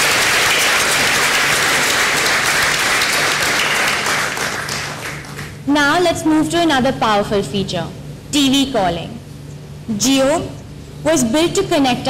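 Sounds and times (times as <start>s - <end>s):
large audience applauding: 0.0s - 5.6s.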